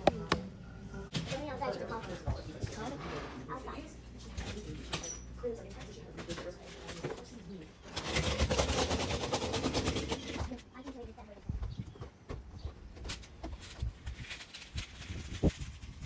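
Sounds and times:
wheels rattling over deck boards: 7.8 - 10.6.

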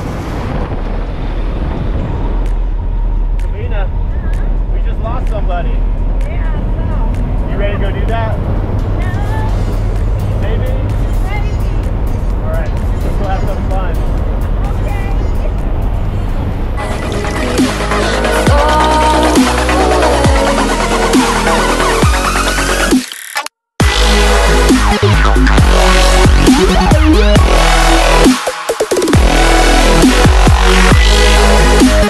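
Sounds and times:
plane engines droning: 0.0 - 18.0
music: 2.4 - 32.0
voices: 3.5 - 9.7, 10.3 - 15.8.

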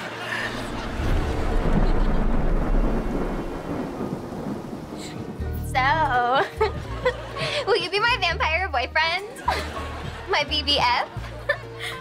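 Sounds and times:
steady rain: 0.0 - 8.2
thunder rumbling: 0.2 - 8.0.

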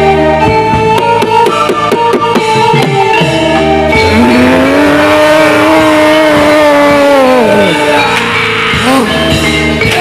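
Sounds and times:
sustained ensemble notes: 0.0 - 10.0
drumming: 0.5 - 10.0.

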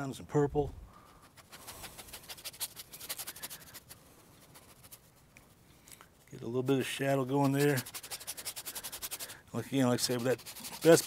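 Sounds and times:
paintbrush scrubbing on canvas: 1.0 - 5.3, 6.4 - 11.0.

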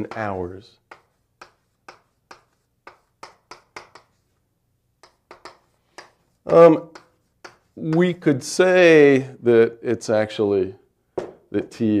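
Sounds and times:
chalk tapping on blackboard: 0.0 - 4.4, 5.0 - 8.4.

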